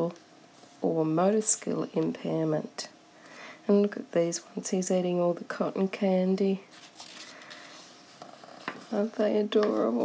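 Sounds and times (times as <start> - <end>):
paper page rustling: 6.7 - 10.0.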